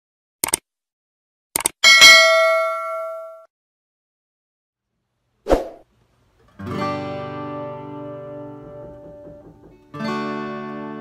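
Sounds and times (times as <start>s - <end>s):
notification bell ding: 1.8s - 3.5s.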